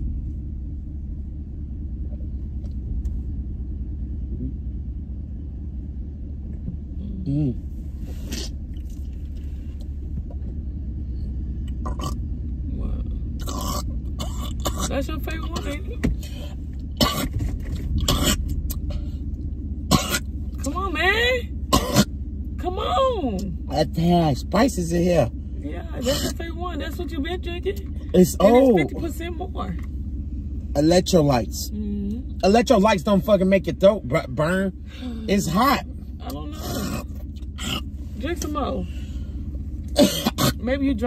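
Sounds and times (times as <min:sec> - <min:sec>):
car cabin low rumble: 0:00.0 - 0:41.0.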